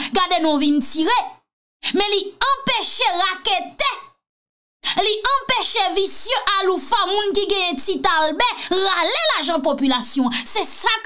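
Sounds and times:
woman talking animatedly: 0.0 - 4.1, 4.8 - 11.0.

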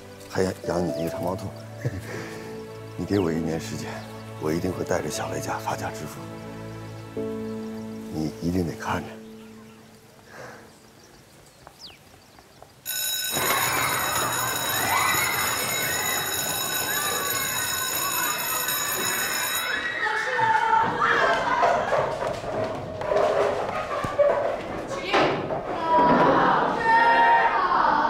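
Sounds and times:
electric school bell ringing: 12.9 - 20.5
children chattering: 12.9 - 28.0
footsteps in a corridor: 19.8 - 26.5.

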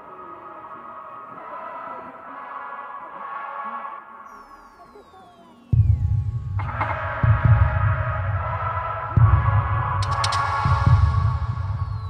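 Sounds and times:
high tones gliding downward: 4.2 - 6.7.

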